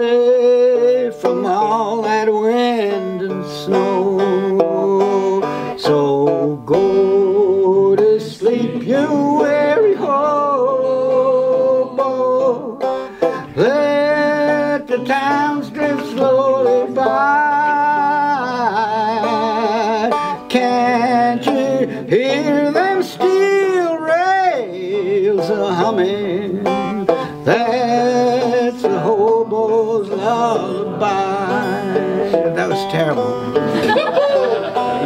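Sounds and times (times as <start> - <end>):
man singing: 0.0 - 34.8
banjo playing: 0.0 - 35.0.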